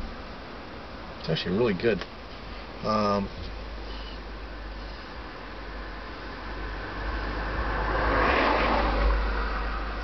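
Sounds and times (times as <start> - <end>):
car passing by: 5.7 - 10.0.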